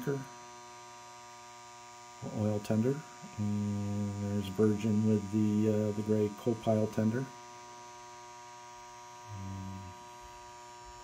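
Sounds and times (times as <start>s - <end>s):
electrical mains hum: 0.0s - 11.0s
person speaking: 2.2s - 7.0s.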